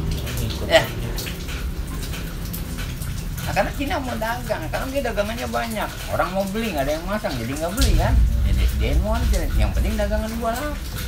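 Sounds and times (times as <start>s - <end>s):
low hum and hiss: 0.0s - 11.0s.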